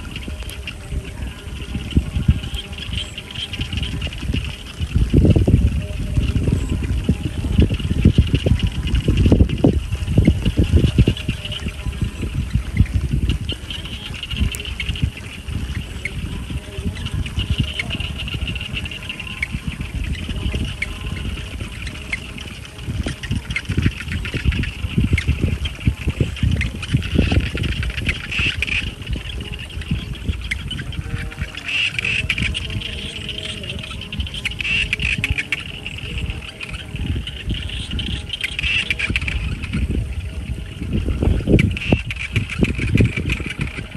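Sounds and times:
steady high-pitched buzz: 0.0 - 43.9
wind buffeting microphone: 0.0 - 43.9.

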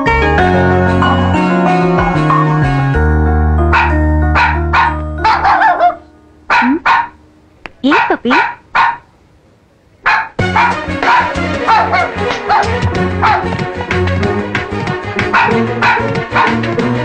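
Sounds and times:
film background music: 0.0 - 7.0, 10.4 - 17.0
small dog yapping: 3.8 - 7.2, 7.9 - 9.1, 10.1 - 13.5, 15.3 - 16.6.

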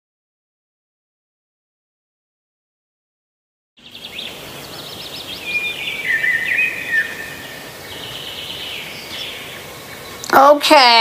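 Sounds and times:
outdoor background hiss: 3.8 - 11.0
songbirds chirping: 3.8 - 11.0.

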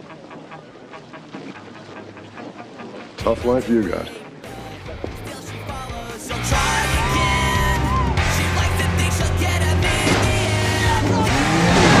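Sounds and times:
background music: 0.0 - 12.0
jet ski engine revving: 6.6 - 12.0.

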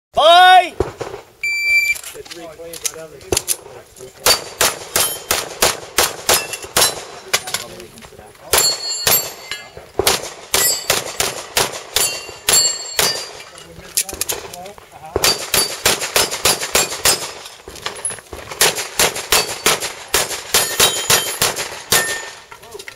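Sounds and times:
steel targets ringing: 4.3 - 5.4, 8.5 - 9.8, 10.6 - 11.0, 12.0 - 13.5, 20.6 - 22.5
handgun shots: 15.2 - 17.5, 18.6 - 22.3.

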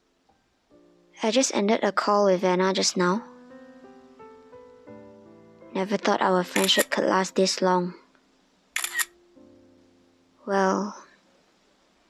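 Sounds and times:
faint soft music: 0.0 - 12.0
phone camera shutter clicks: 6.6 - 6.9, 8.8 - 9.1.

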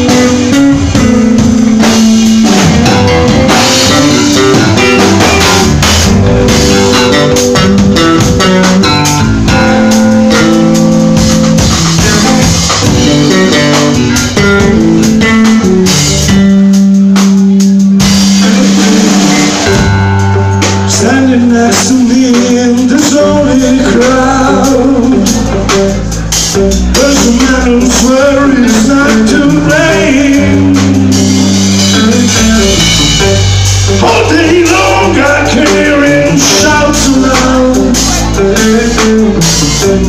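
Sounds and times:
bass line: 0.0 - 40.0
drum kit: 0.0 - 40.0
guitar: 0.0 - 40.0
live band playing: 0.0 - 40.0.

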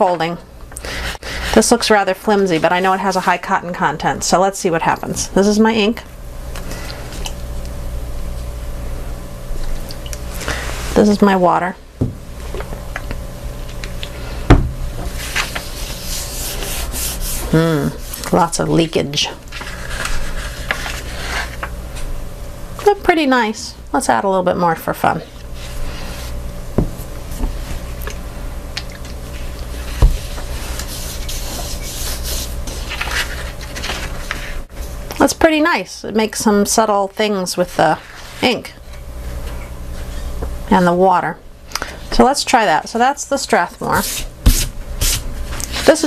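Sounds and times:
low steady hum: 0.0 - 46.0
hands rubbing paper: 15.1 - 18.4, 19.5 - 21.7, 29.8 - 34.6.

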